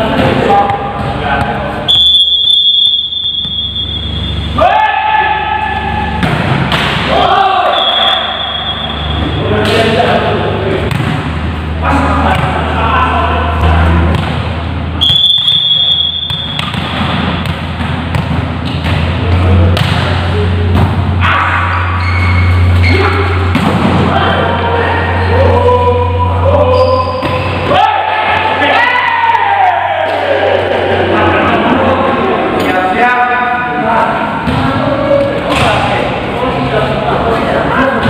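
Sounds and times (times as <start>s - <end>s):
voices: 0.0s - 16.5s, 18.9s - 38.0s
volleyballs hit and bouncing: 0.0s - 24.7s, 26.5s - 28.8s, 29.4s - 31.0s, 34.2s - 38.0s.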